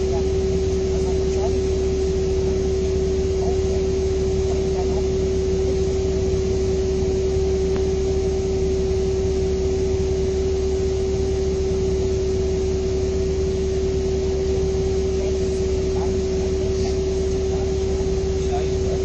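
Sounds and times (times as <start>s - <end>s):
diesel engine idling: 0.0s - 19.0s.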